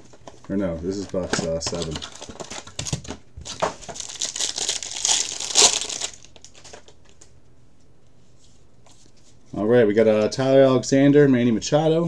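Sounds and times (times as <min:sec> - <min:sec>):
foil wrapper crinkling and tearing: 0:03.5 - 0:07.0.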